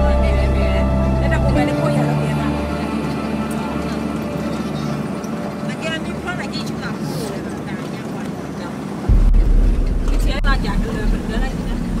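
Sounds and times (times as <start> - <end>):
loud low rumble: 0.0 - 6.6, 9.1 - 12.0
vehicle engine running: 0.0 - 8.4, 9.0 - 12.0
people's voices: 0.0 - 12.0.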